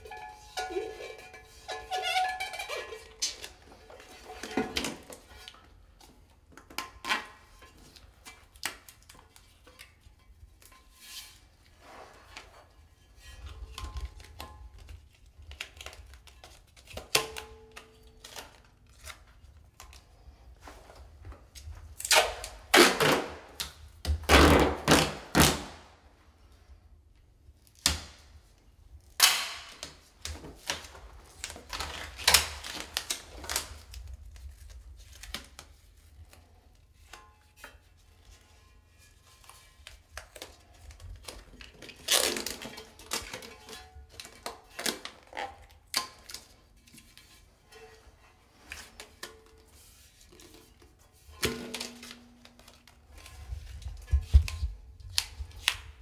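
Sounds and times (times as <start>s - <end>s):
packing tape ripping off roll: 22.0s - 26.0s, 29.1s - 36.4s, 39.8s - 47.4s, 51.4s - 56.0s.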